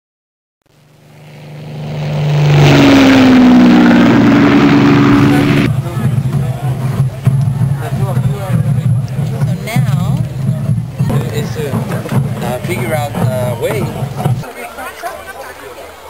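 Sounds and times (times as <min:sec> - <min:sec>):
rough low hum: 0:00.7 - 0:14.4
racing car engine passing: 0:00.8 - 0:14.4.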